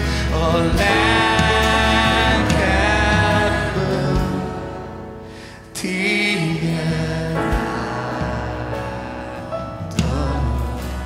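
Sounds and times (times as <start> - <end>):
worship band playing instrumental: 0.0 - 11.0.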